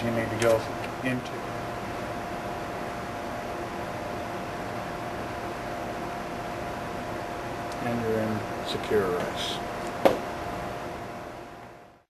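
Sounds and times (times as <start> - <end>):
computer fans humming: 0.0 - 12.0
sharp knock: 10.0 - 10.3.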